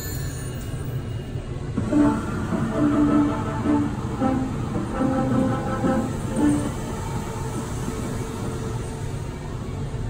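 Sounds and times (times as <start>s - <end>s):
horn-like game jingle: 1.8s - 6.9s.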